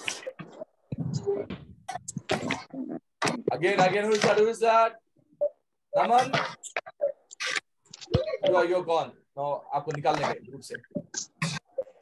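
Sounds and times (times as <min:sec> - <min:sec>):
broken voices on video call: 0:00.0 - 0:12.0.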